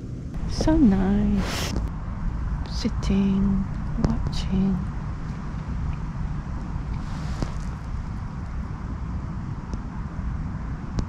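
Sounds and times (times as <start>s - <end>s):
outdoor background: 0.0s - 11.0s
wind buffeting microphone: 0.0s - 11.0s.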